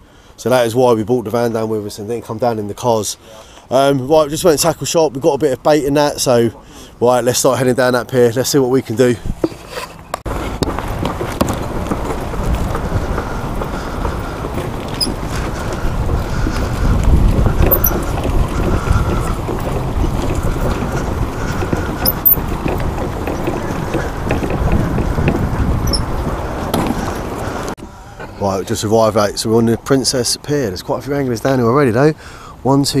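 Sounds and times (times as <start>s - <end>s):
wind buffeting microphone: 10.2s - 27.8s.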